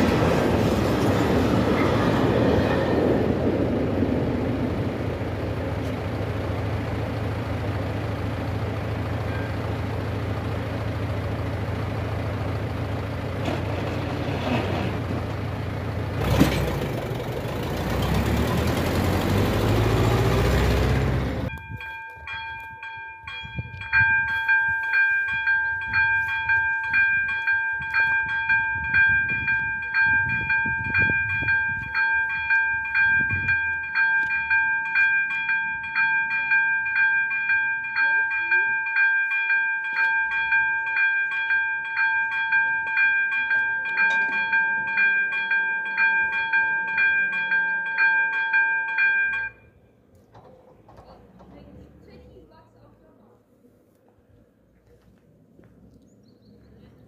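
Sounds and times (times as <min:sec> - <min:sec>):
tractor with trailer passing: 0:00.0 - 0:53.1
level crossing warning bell ringing: 0:06.3 - 0:14.1, 0:15.3 - 0:50.0.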